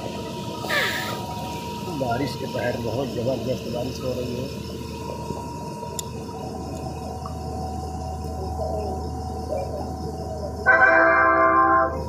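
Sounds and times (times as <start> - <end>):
low hum: 0.0 - 12.0
heavy rain hiss: 0.6 - 4.4
train announcement: 10.6 - 12.0.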